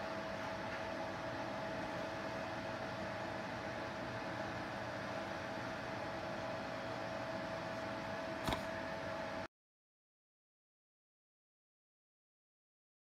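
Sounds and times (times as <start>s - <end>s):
steady hiss with whine: 0.0s - 9.5s.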